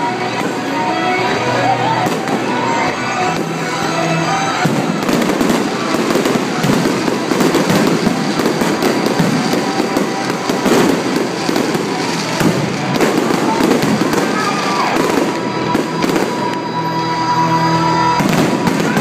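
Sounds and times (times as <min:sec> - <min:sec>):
fireworks crackling and banging: 0:00.0 - 0:19.0.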